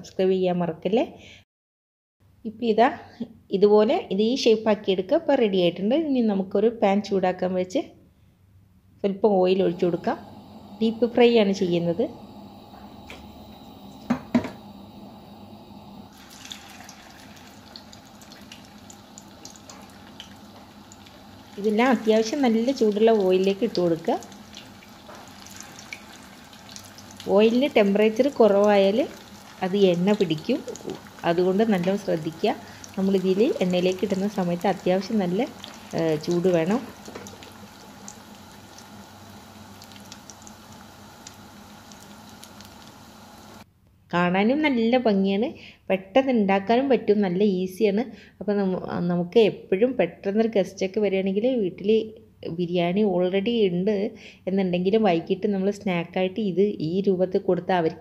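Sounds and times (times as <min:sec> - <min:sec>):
food frying in hot oil: 0:16.0 - 0:43.6
person speaking: 0:21.6 - 0:24.4.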